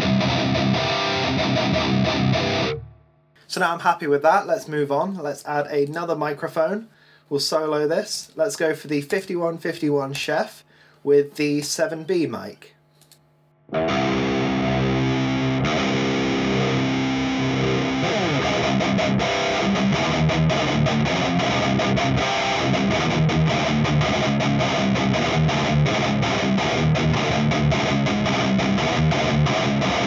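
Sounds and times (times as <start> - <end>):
distorted electric guitar riff: 0.0 - 3.2, 13.6 - 30.0.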